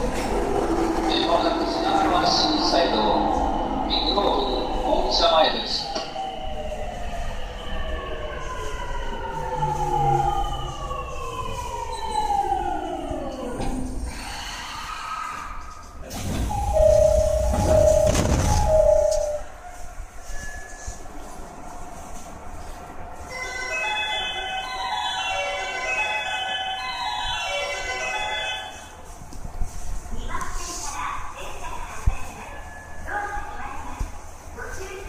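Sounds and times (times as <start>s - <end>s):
train inverter whining: 0.0s - 14.1s
door chime beeps: 16.5s - 19.5s.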